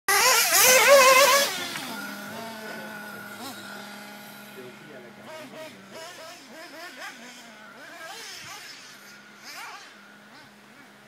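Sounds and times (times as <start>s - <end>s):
toy car motor revving: 0.1s - 11.0s.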